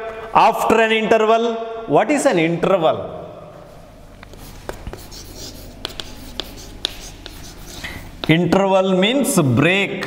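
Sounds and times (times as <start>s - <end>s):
chalk tapping: 4.1s - 8.6s
chalk scratching on blackboard: 4.2s - 8.5s.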